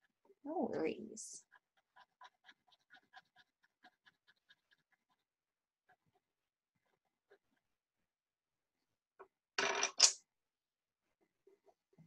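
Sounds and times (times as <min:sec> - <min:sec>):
pencils clattering on table: 0:09.6 - 0:10.2.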